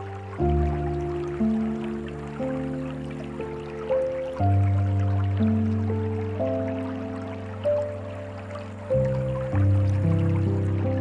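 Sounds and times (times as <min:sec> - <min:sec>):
slow soft piano music: 0:00.0 - 0:11.0
water trickling: 0:00.0 - 0:11.0.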